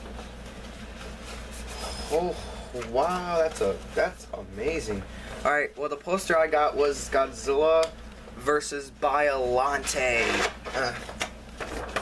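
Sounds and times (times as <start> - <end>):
room tone hum and hiss: 0.0 - 12.0
rustling and handling noise: 0.0 - 12.0.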